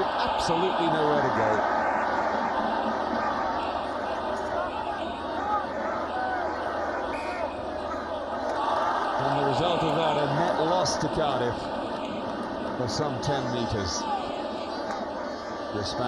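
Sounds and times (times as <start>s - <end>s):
stadium crowd shouting: 0.0s - 16.0s.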